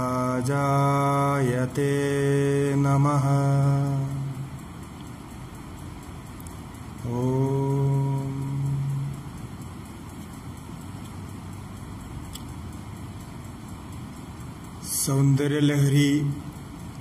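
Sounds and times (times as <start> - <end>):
low room hiss: 0.0 - 17.0
man chanting a held note: 14.8 - 16.6.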